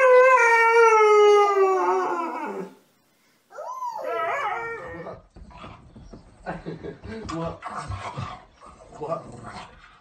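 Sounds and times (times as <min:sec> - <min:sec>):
dog howling whine: 0:00.0 - 0:02.8, 0:03.5 - 0:05.2.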